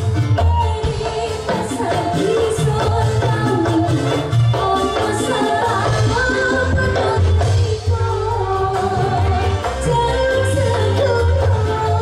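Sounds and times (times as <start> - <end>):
live music with steady bass line: 0.0 - 12.0
woman singing into a microphone: 0.4 - 12.0.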